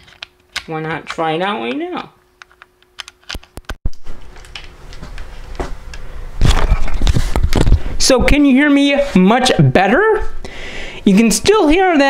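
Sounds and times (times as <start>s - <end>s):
microphone handling rustle: 6.4s - 9.2s.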